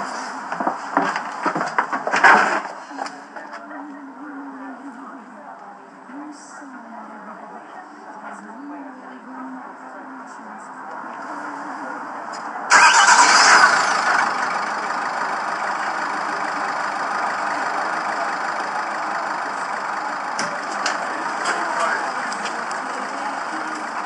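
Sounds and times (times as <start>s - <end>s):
car engine starting and running: 12.7s - 24.0s.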